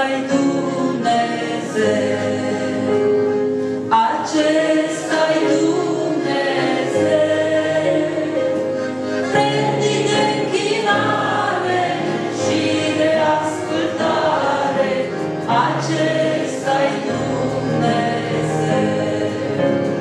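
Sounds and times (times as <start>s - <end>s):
group of voices singing along: 0.0s - 20.0s.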